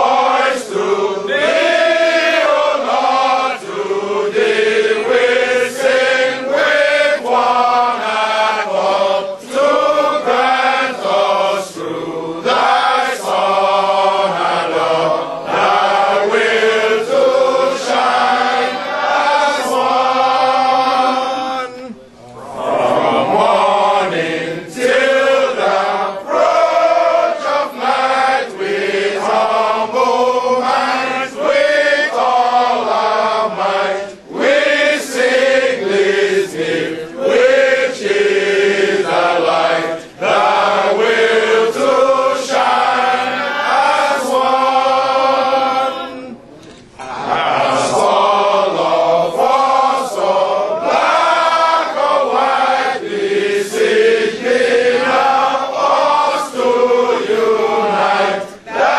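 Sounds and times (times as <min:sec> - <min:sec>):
group of men singing: 0:00.0 - 0:58.9.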